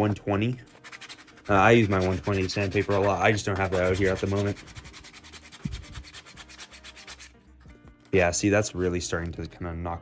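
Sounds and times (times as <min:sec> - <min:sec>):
sandpaper rubbing on plastic: 0:00.7 - 0:07.3.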